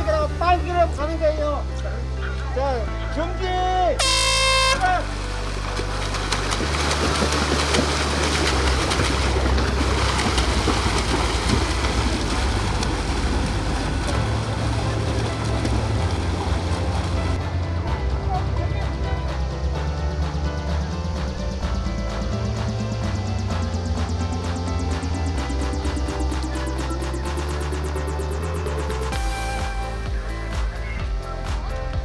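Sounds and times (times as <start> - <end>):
background music: 0.0 - 32.0
air horn blast: 4.0 - 5.2
swimmers splashing: 4.0 - 17.4.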